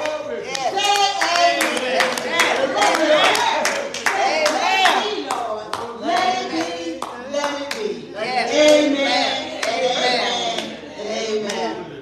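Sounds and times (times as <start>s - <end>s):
hands clapping along: 0.0s - 7.9s.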